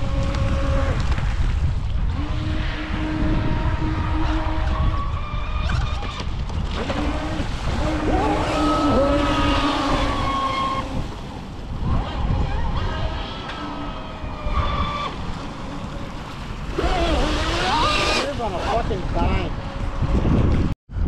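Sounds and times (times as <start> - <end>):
wind noise on microphone: 0.0 - 21.0
electric motors whining: 2.1 - 11.2, 11.8 - 20.2.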